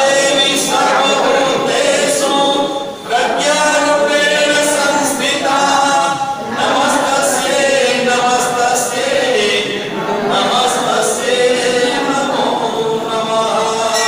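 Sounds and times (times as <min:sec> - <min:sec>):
group singing a hymn: 0:00.0 - 0:14.0.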